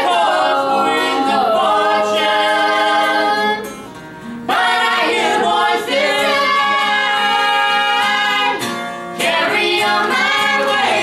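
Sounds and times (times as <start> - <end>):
women singing in harmony: 0.0 - 3.7, 4.5 - 11.0
acoustic guitar: 0.0 - 11.0.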